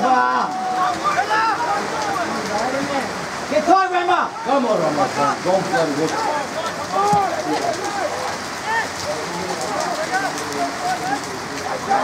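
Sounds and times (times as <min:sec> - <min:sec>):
players shouting: 0:00.0 - 0:12.0
steady rain hiss: 0:00.0 - 0:12.0.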